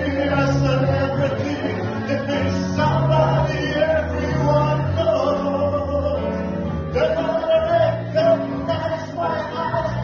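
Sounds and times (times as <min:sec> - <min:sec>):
man singing into a microphone: 0:00.0 - 0:10.0
musical accompaniment: 0:00.0 - 0:10.0.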